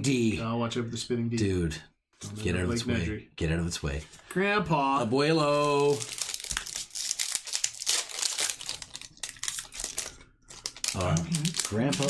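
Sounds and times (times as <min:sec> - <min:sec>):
foil wrapper crinkling and tearing: 0:05.4 - 0:12.0.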